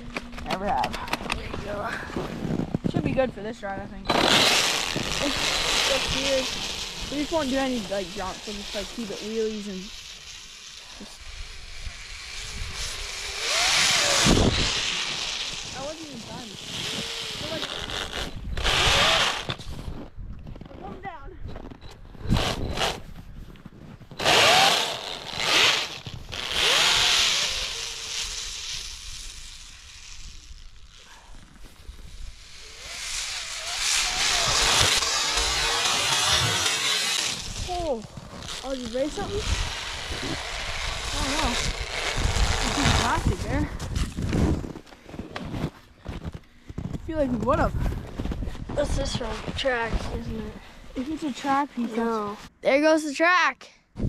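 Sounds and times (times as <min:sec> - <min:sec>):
track churning through snow: 0:04.1 - 0:10.2, 0:10.8 - 0:19.6, 0:31.0 - 0:46.2
toy snowmobile motor whining: 0:04.1 - 0:19.8, 0:22.2 - 0:23.0, 0:24.1 - 0:44.8.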